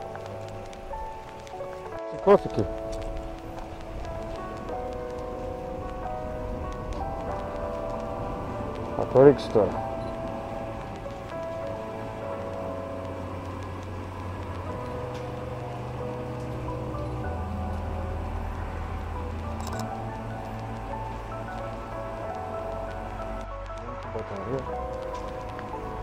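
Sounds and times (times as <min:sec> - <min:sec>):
bass notes: 0:00.0 - 0:26.0
soft sustained chords: 0:00.0 - 0:26.0.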